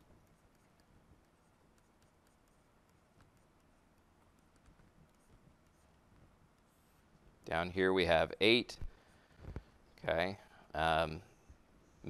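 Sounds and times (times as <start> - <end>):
stylus tapping on tablet screen: 0.0 - 6.8.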